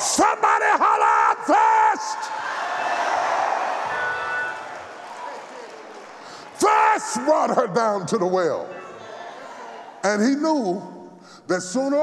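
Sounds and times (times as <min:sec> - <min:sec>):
man shouting chanted cries: 0:00.0 - 0:02.4
congregation noise: 0:00.0 - 0:12.0.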